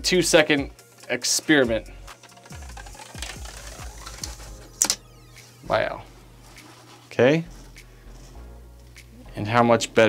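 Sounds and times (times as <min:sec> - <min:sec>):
plastic strip clicks and scrapes: 0:02.3 - 0:05.0.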